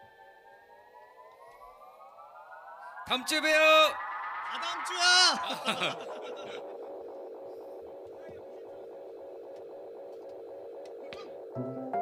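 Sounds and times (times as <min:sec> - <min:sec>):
electric guitar tone gliding upward: 0:00.0 - 0:12.0.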